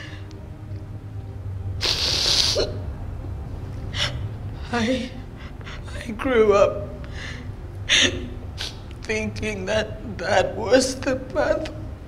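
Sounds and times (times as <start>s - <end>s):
woman crying: 3.9s - 8.8s.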